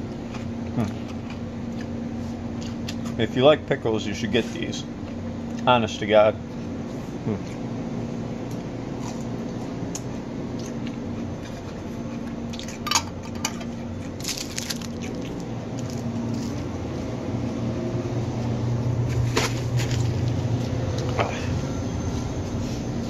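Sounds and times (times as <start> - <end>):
steady low hum: 0.0 - 23.0.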